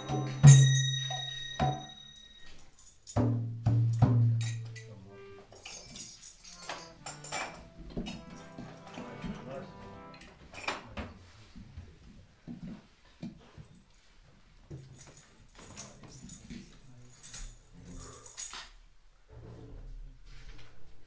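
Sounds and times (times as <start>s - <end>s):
metallic percussion strikes: 0.0s - 10.4s
harmonium playing: 6.6s - 10.4s.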